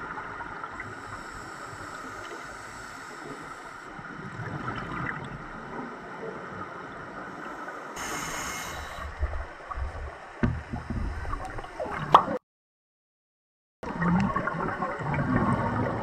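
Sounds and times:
underwater hiss: 0.8 - 4.0, 7.3 - 9.7
thumps: 9.2 - 12.4
scuba exhaust bubbles gurgling: 13.8 - 16.0.

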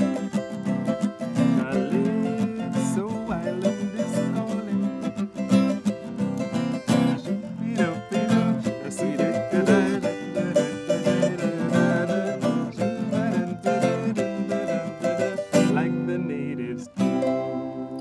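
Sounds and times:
bright plucked melody: 0.0 - 18.0
strummed acoustic guitar: 0.0 - 18.0.

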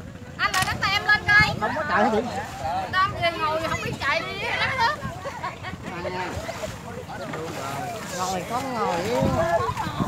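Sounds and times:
river water flowing: 0.0 - 10.0
wind on microphone: 0.0 - 10.0.

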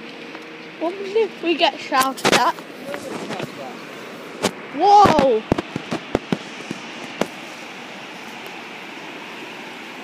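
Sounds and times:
water rushing at water wheel: 0.0 - 10.0.

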